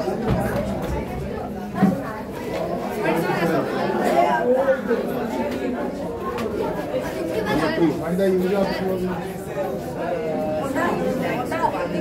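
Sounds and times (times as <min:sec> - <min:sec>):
young voices chattering: 0:00.0 - 0:12.0.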